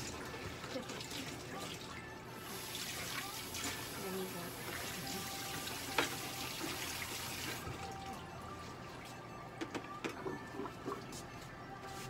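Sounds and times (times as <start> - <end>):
water running from a tap: 0.0 - 8.1.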